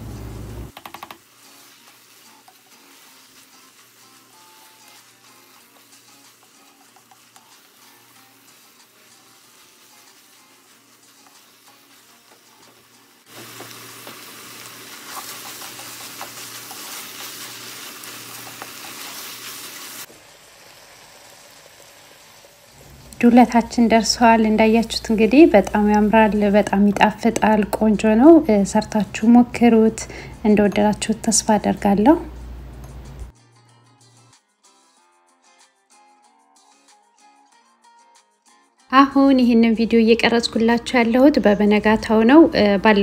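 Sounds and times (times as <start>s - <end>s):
food sizzling in a pan: 0.2s - 33.2s
wooden spoon scraping a pan: 14.9s - 19.9s.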